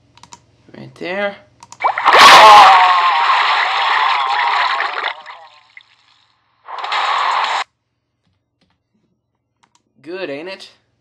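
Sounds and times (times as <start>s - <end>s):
liquid splashing: 1.8s - 7.6s.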